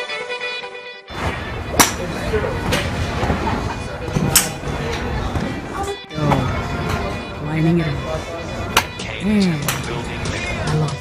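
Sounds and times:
indoor golf dome ambience: 1.1s - 9.0s.

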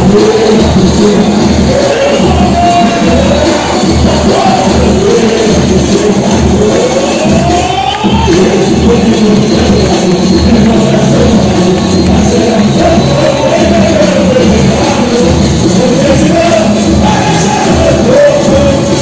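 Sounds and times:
bass drums beating: 0.0s - 19.0s
crowd: 0.0s - 19.0s
lead singer's voice: 0.0s - 19.0s
samba drum section playing: 0.0s - 19.0s.

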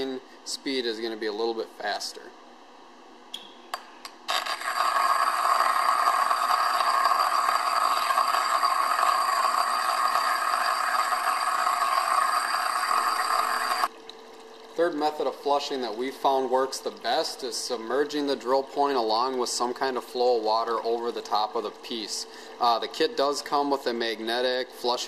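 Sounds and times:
electrode sparking under water: 4.3s - 13.9s.

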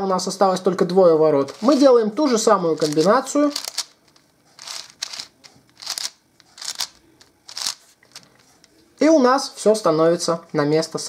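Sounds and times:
puzzle cube turning scrape and click: 1.5s - 1.9s, 2.8s - 8.8s.

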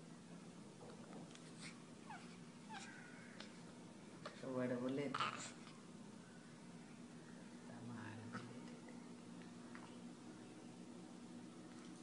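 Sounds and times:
low steady hum: 0.0s - 12.0s
baby squeaking and cooing: 2.1s - 3.1s, 5.1s - 5.6s.

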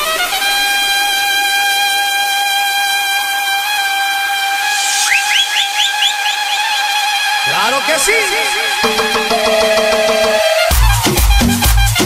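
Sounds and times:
held whistle-like synth tone: 4.2s - 10.3s
short rising synth chirps: 4.6s - 7.5s.

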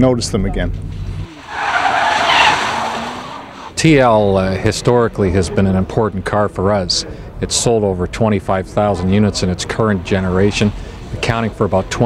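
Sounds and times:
tyres skidding on wet pavement: 1.3s - 3.8s.

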